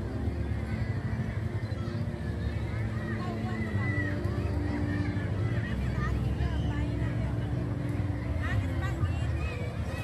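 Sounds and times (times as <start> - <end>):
crowd talking: 0.0 - 10.0.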